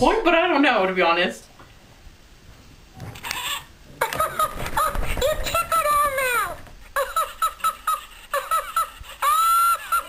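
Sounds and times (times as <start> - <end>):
toy electronic voice giggling: 3.2 - 6.3, 7.0 - 10.0.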